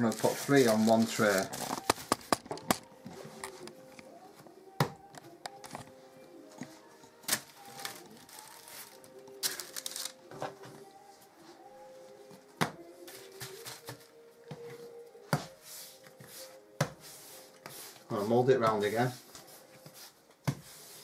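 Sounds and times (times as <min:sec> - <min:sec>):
faint background music: 0:00.0 - 0:21.0.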